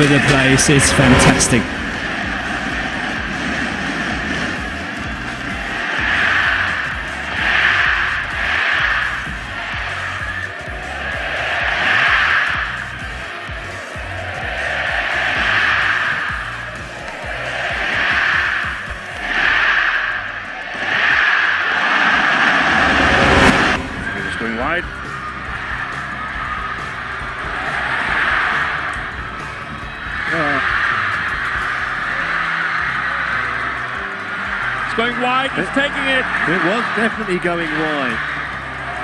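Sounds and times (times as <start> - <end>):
arena crowd cheering: 0.0 - 39.0.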